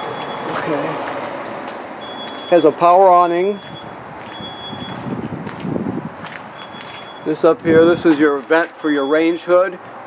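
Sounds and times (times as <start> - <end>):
footsteps: 0.5 - 8.8
high electronic beep: 2.0 - 2.7, 3.5 - 5.0, 6.6 - 7.4.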